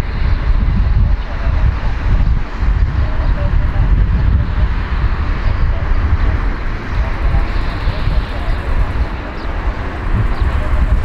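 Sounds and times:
jet engines roaring at takeoff: 0.0 - 11.0
wind on microphone: 0.0 - 11.0.

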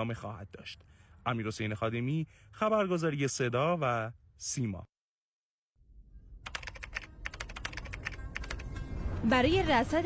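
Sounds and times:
keyboard typing: 6.4 - 8.7.

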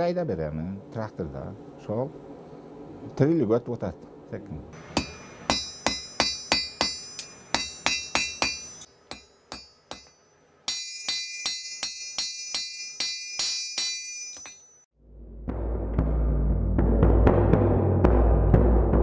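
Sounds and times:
hammer striking steel on anvil: 4.8 - 14.9.

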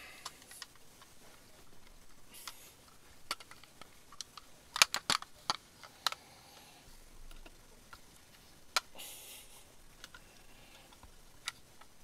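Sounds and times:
plastic toys clacking: 0.2 - 1.2, 1.8 - 6.2, 10.0 - 12.0.

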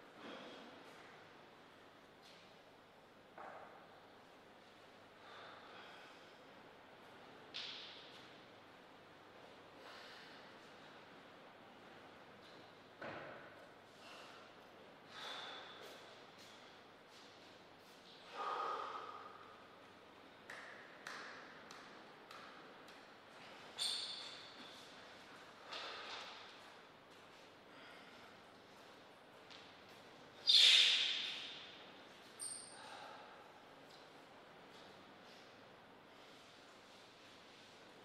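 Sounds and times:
brief squeaks: 23.8 - 24.6, 30.4 - 31.4.

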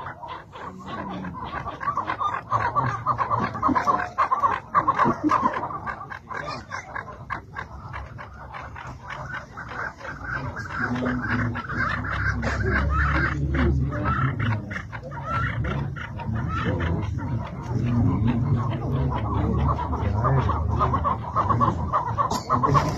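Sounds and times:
partridges clucking: 0.0 - 22.9.

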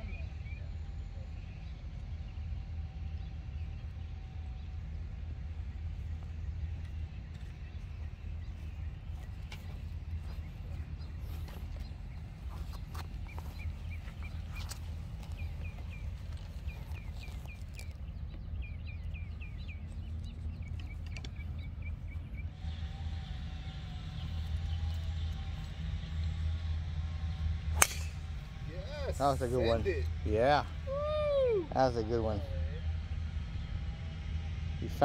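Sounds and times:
low rumble: 0.0 - 35.0
bird chirping: 5.8 - 25.4
golf club striking ball: 27.7 - 28.4.

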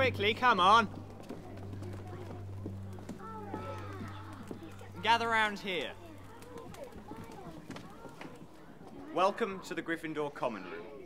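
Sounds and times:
children's footsteps: 0.0 - 10.4
faint murmuring voices: 0.0 - 11.0.

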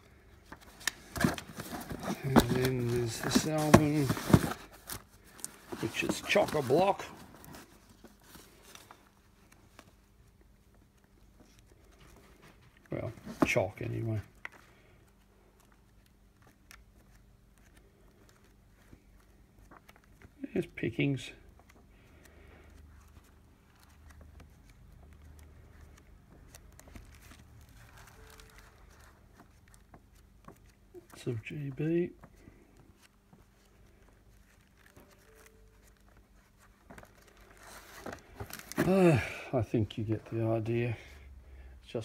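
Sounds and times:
paper rustling: 0.1 - 41.0.

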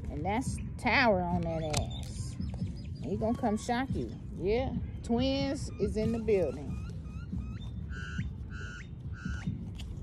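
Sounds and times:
bird calls: 0.2 - 10.0.

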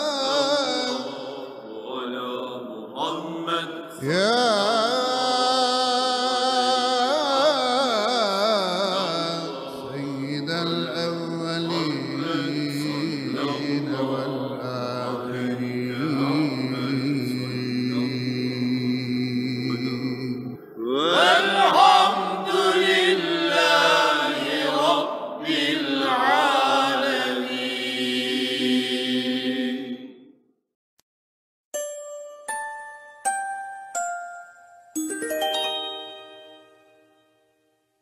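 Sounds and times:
religious chanting: 0.0 - 30.3.

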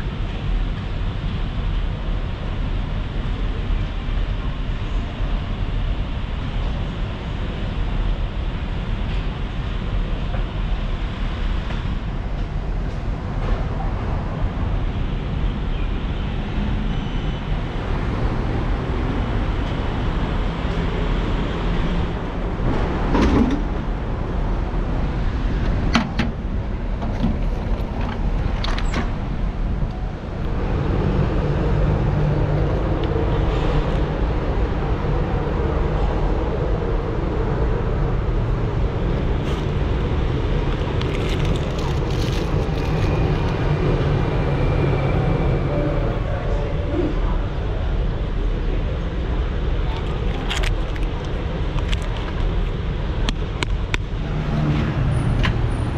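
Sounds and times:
street traffic noise: 0.0 - 55.9.

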